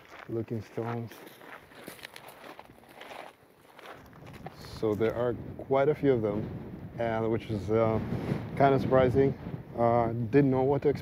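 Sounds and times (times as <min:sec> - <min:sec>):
footsteps on gravel: 0:00.0 - 0:05.2.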